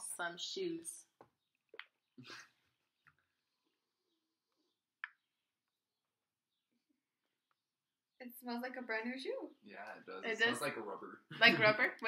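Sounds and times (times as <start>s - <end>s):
faint breathy laugh: 2.2s - 2.6s.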